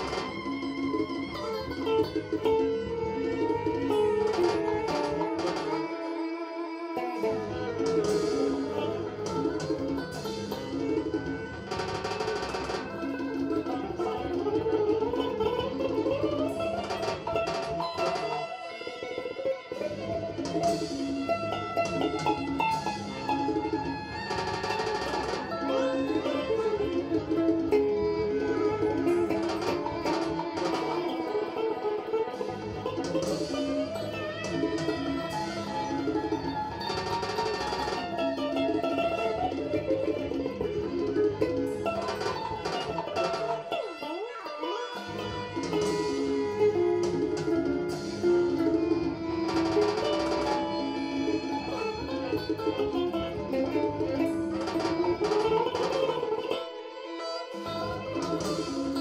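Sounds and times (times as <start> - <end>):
guitar synth tones with pitch glides: 0.0 - 59.0.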